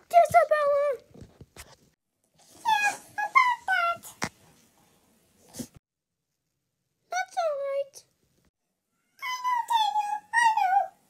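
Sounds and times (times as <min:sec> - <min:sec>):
squeaky cartoon voice: 0:09.1 - 0:11.0.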